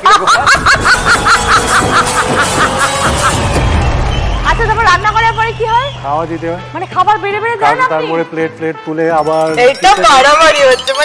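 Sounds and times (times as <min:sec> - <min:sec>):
hearty laughter: 0:00.0 - 0:03.6.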